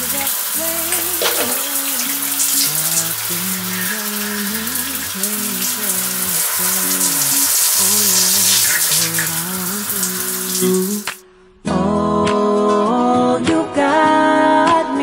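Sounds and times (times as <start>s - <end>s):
shower spray running: 0.0s - 11.2s
slow melodic background music: 0.0s - 15.0s.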